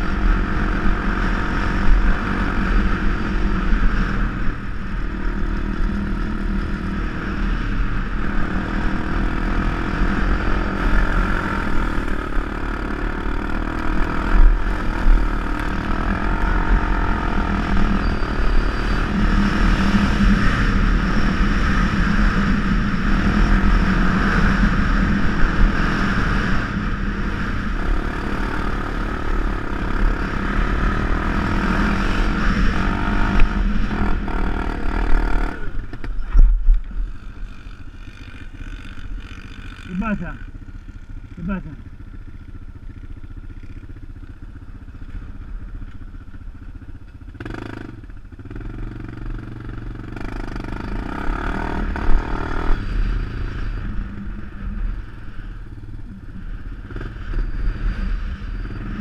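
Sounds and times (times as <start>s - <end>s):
atv engine running: 0.0s - 59.0s
wind rumble on microphone: 14.0s - 38.0s.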